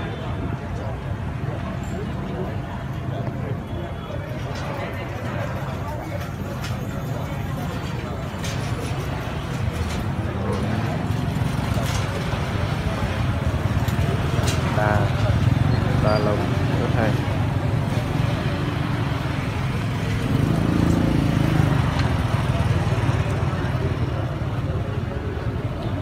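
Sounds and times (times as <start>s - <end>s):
low rumble of traffic: 0.0s - 26.0s
people talking: 0.0s - 26.0s
motorbike engine passing: 9.7s - 25.4s.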